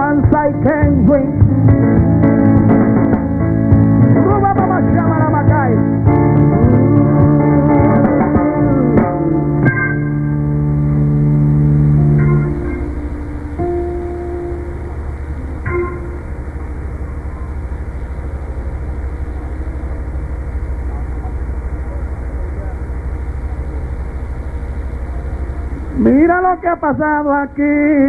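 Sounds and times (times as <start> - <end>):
steady low hum: 8.8 - 27.7.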